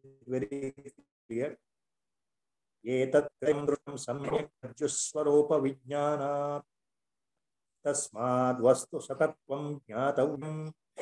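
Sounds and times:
man chanting: 0.0 - 1.6, 2.8 - 6.7, 7.8 - 11.0.

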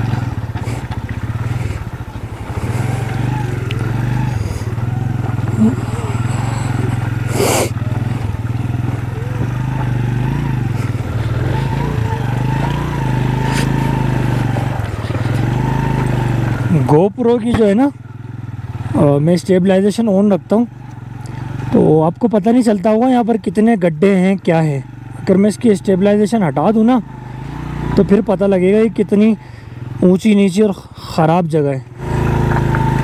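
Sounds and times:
motorcycle engine at low revs: 0.0 - 33.0.

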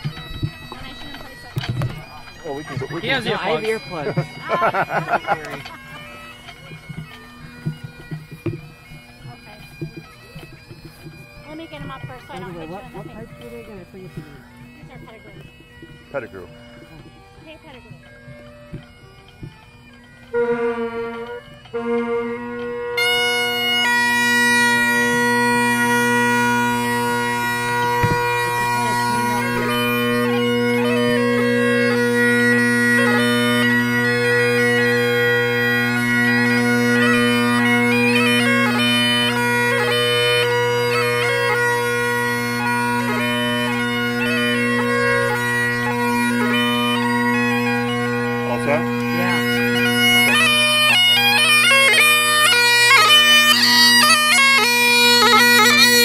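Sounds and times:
bagpipe playing: 0.0 - 56.0.

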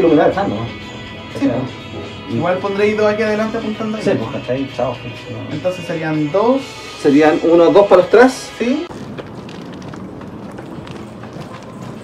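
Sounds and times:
footsteps on concrete path: 8.8 - 12.0.

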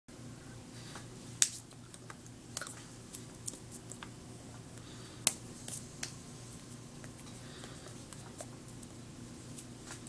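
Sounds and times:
low electrical hum: 0.1 - 10.0.

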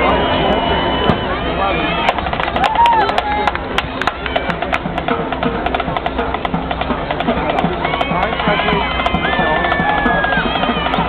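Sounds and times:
marching band percussion: 0.0 - 11.0
many voices calling out: 7.2 - 11.0.

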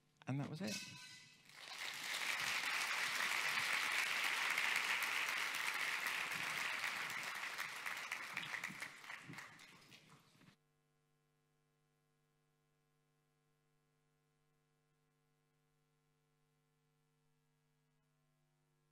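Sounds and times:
audience applauding: 1.5 - 10.5.

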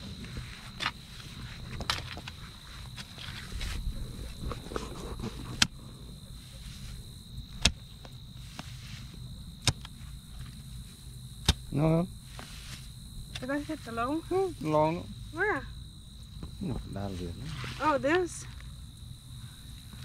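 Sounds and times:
hoe striking dry soil: 7.5 - 8.8, 9.6 - 10.6, 11.4 - 13.6
hoe scraping soil: 12.3 - 12.9.

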